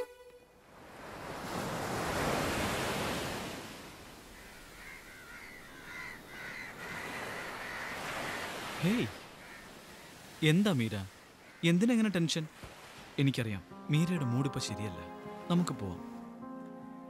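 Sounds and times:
ocean surf: 0.0s - 16.4s
crows cawing: 4.2s - 10.4s, 11.1s - 11.8s.

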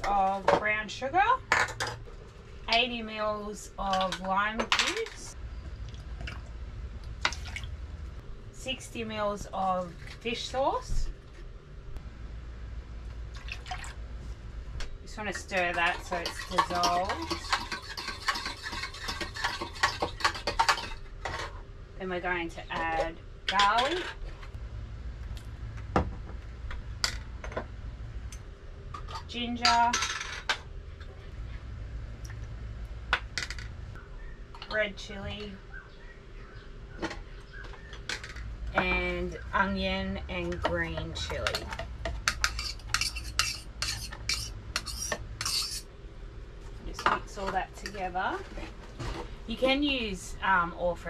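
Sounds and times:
metal spoon scraping a bowl: 15.6s - 21.0s, 42.2s - 45.9s.

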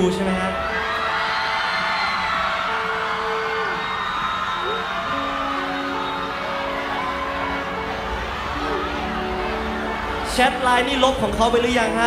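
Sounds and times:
audience cheering and whooping: 0.0s - 12.0s
keyboard sustained chords: 2.0s - 12.0s.

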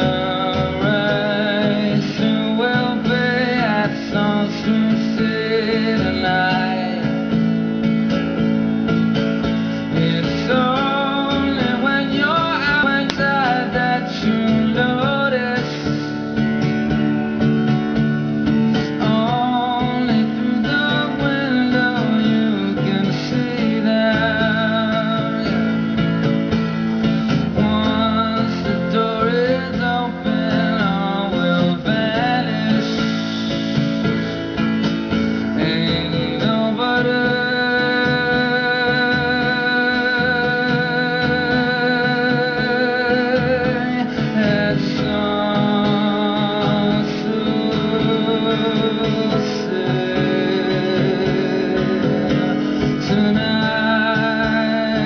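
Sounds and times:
man singing with vibrato: 0.0s - 16.8s, 18.7s - 55.0s
strummed acoustic guitar: 0.0s - 55.0s.

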